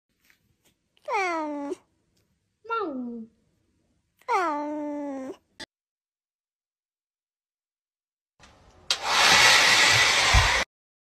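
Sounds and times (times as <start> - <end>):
cat meowing: 1.0 - 1.9, 4.3 - 5.4.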